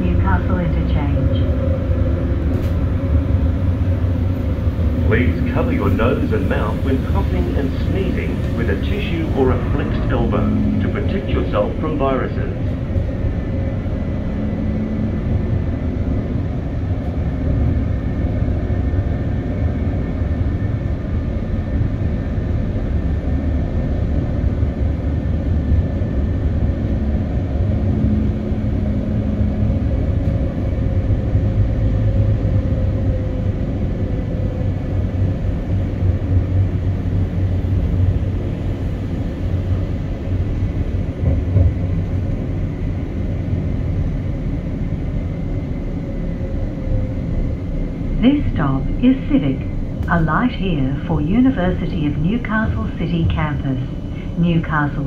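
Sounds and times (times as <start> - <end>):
tram rumbling with faint whine: 0.0 - 55.0.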